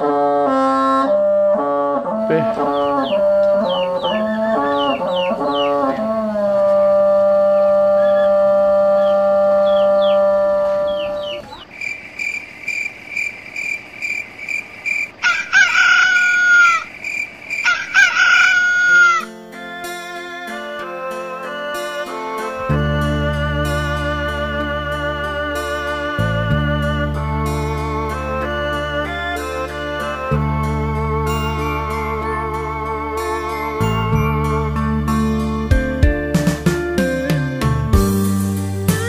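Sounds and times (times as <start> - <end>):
instrumental music: 0.5 - 11.6, 18.4 - 39.0
rooster crowing: 2.3 - 11.6, 15.2 - 16.9, 17.5 - 19.3
bird chirps: 2.3 - 19.3
fast even chirping: 2.6 - 6.0.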